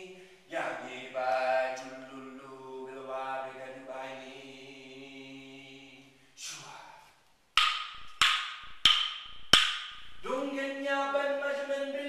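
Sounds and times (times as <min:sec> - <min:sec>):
wooden clapsticks clacking: 0:07.6 - 0:10.1.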